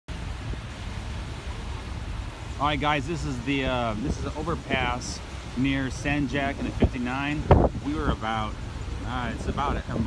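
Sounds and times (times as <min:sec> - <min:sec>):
wind rumbling on microphone: 0:00.1 - 0:10.0.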